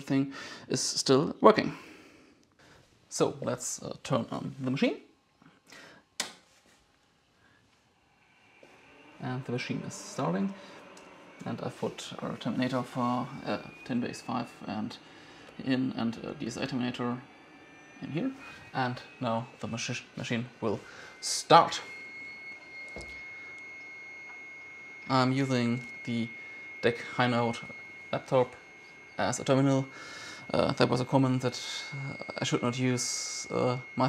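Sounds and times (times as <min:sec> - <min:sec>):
high whine: 0:00.0 - 0:34.0
cooling fans rushing: 0:07.3 - 0:34.0.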